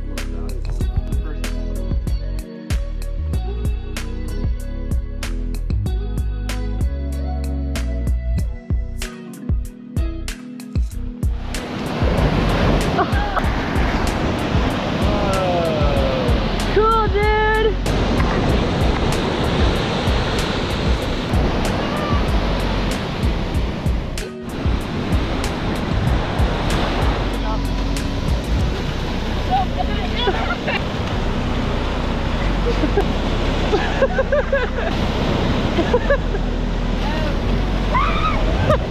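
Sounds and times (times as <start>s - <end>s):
background music: 0.0s - 38.9s
surf breaking on a beach: 11.4s - 38.9s
people calling out: 21.6s - 22.6s.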